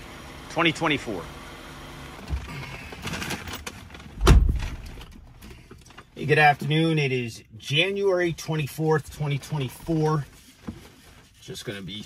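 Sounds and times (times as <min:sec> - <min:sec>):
heavy thump inside car: 0:04.2 - 0:05.1.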